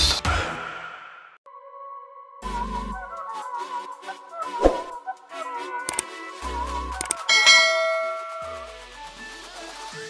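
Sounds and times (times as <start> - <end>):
electronic music: 2.4 - 9.2
bell-like metallic ring: 7.3 - 8.8.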